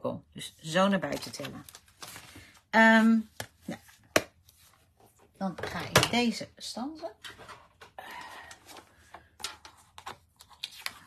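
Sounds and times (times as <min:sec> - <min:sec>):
paper rustle: 0:01.0 - 0:02.6.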